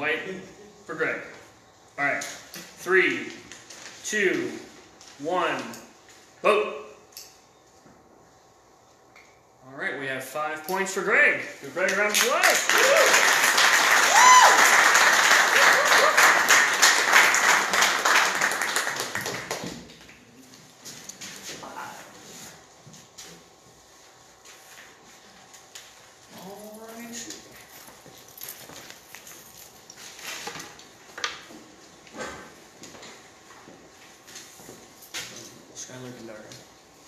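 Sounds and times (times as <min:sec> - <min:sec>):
audience applauding and cheering: 0:12.1 - 0:19.7.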